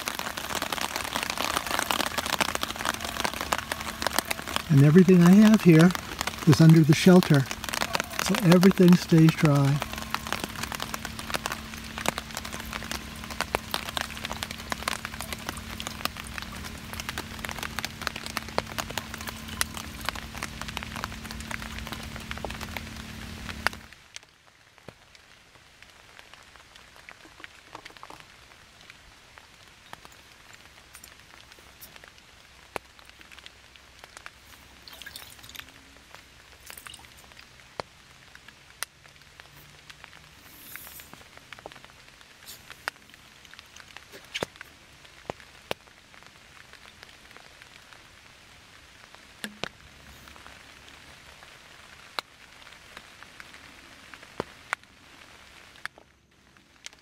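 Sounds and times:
water dripping: 0.0 - 24.3, 26.4 - 47.9, 49.3 - 52.3
faint steady hum: 0.0 - 57.0
rain pattering on tarp: 0.0 - 57.0.

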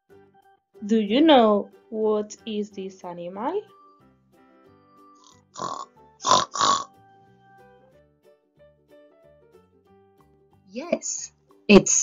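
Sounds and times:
soft children's music: 0.0 - 12.0
pig grunting: 5.6 - 6.9.

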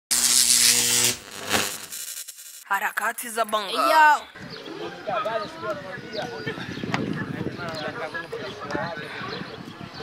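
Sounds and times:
loud buzzy hiss: 0.1 - 2.7.

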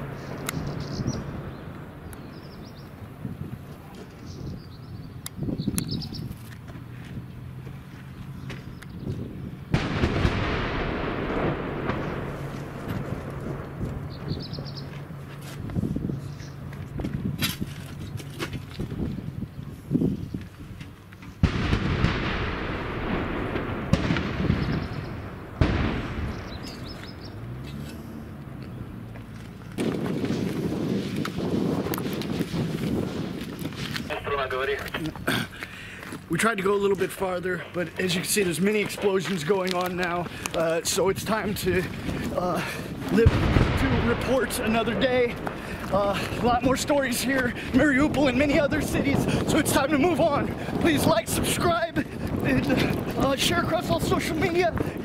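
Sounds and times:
shell explosions: 0.0 - 3.3, 9.7 - 15.2, 21.4 - 27.6, 29.8 - 35.2, 41.0 - 55.0
rumbling noise: 0.0 - 5.6, 8.7 - 20.1, 21.4 - 55.0
gunfire: 9.7 - 14.2, 21.4 - 27.1, 43.2 - 46.6.

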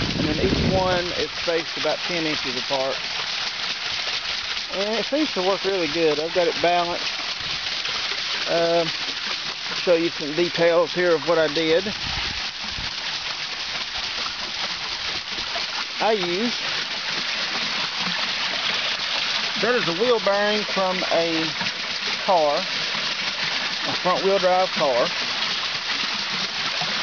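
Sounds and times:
water splashing off water wheel: 0.0 - 27.0.

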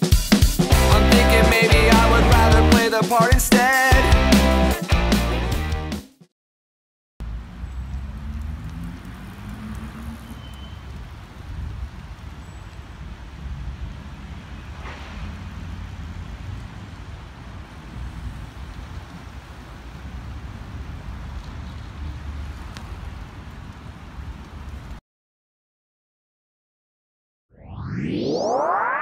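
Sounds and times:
vehicle engine rising in pitch: 7.2 - 10.8, 27.5 - 29.0
vehicle passing with a rush: 7.2 - 11.9, 13.0 - 24.8
road traffic rumble: 7.2 - 25.0.

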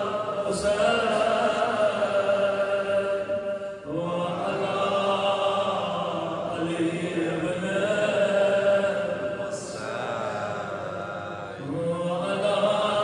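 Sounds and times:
man chanting religious recitation: 0.0 - 13.0.

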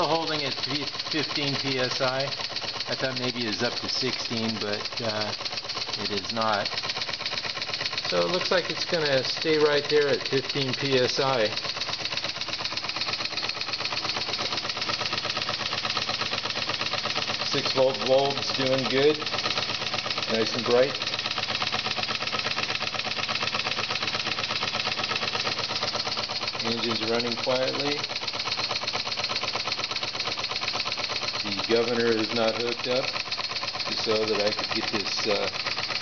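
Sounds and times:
steam engine chuffing: 0.0 - 36.0.

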